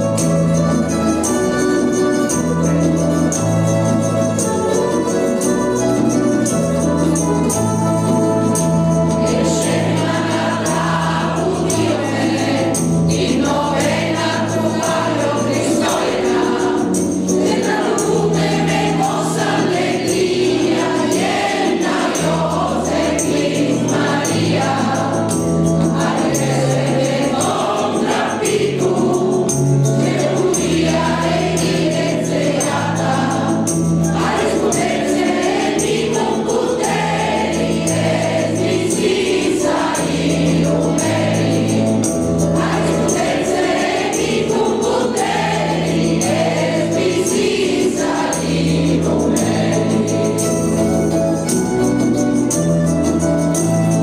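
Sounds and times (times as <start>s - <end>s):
mixed choir singing: 6.3s - 51.5s.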